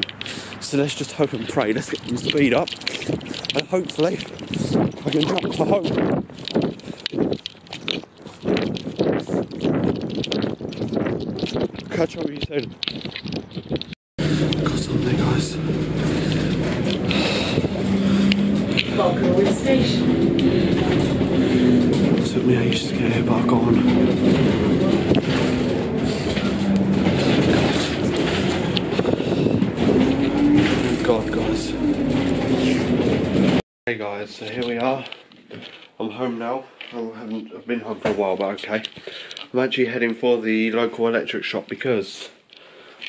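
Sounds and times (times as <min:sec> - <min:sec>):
road rumble: 0:00.0 - 0:33.6
bus engine running: 0:14.2 - 0:33.6.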